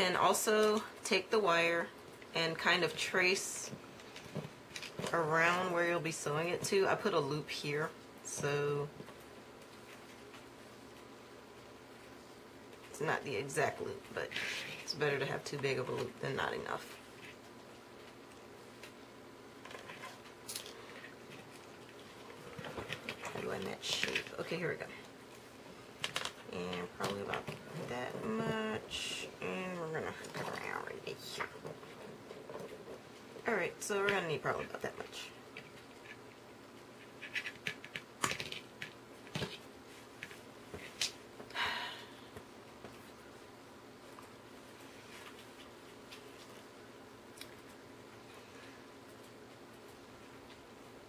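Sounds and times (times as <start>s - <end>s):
wire rustling and scraping: 19.6s - 24.6s.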